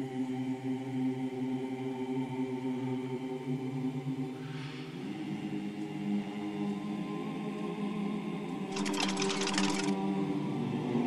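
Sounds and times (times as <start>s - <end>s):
sustained choral chord: 0.0s - 8.7s
fast dry rattle of clicks: 8.7s - 10.0s.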